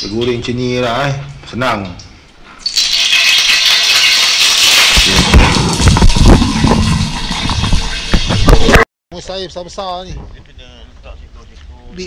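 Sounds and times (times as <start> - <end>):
fish sizzling in hot oil: 2.6 - 8.7.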